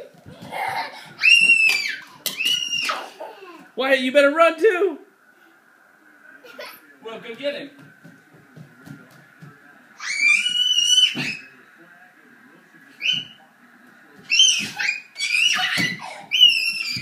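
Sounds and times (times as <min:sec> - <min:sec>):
footsteps on hardwood floor: 0:00.0 - 0:01.6, 0:07.3 - 0:09.8
children squealing: 0:00.5 - 0:03.4, 0:10.0 - 0:11.6, 0:14.3 - 0:17.0.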